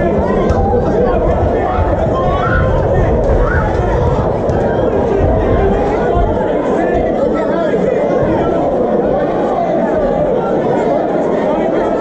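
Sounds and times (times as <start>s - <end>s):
crowd chatter in large hall: 0.0s - 12.0s.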